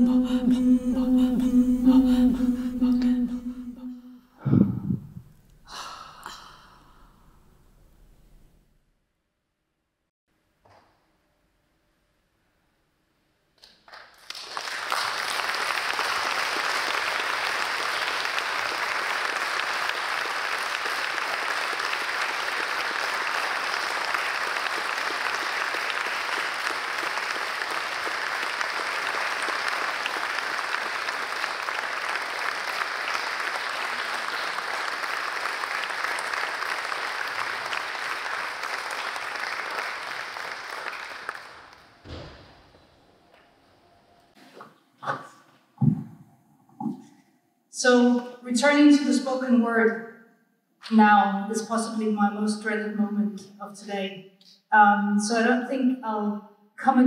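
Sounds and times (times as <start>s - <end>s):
audience applauding: 13.6s - 42.7s.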